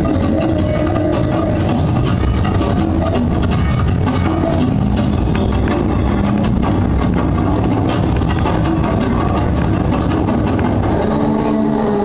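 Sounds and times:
bass-heavy music: 0.0s - 12.0s.

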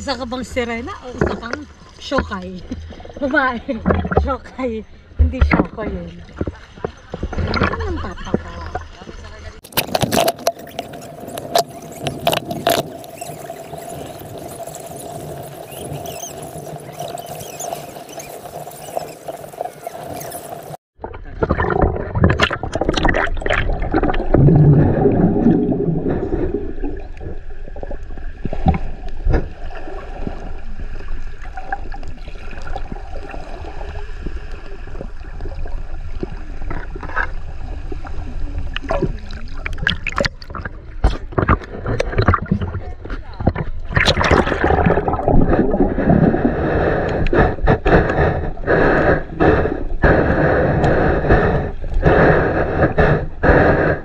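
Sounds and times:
muffled underwater water rumble: 0.0s - 54.0s
steady underwater hiss: 10.4s - 20.8s, 23.9s - 40.2s, 43.2s - 54.0s.

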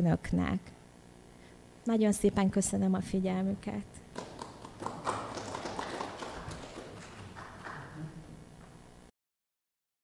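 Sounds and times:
audience applauding: 4.1s - 8.4s.

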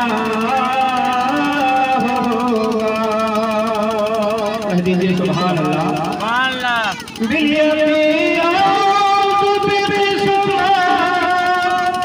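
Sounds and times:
man chanting melodically: 0.0s - 12.0s.

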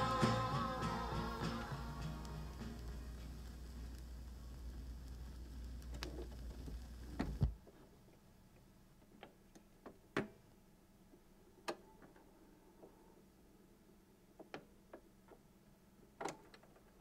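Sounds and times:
turntable rumble: 0.0s - 7.6s
vinyl surface crackle: 0.0s - 7.9s.

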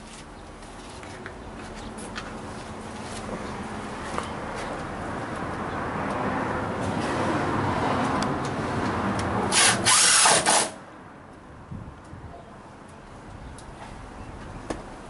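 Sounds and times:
cordless drill driving screw: 9.5s - 10.8s.

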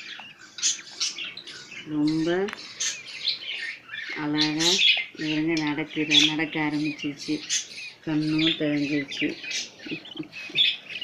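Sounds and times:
bird chicks cheeping: 0.0s - 11.0s.

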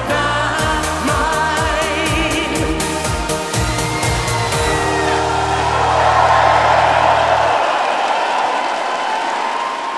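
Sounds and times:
audience applause: 4.0s - 9.9s.

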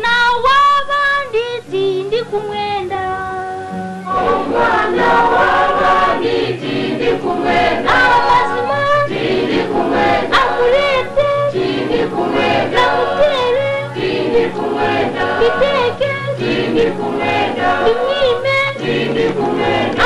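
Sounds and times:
choir singing: 4.0s - 20.0s.

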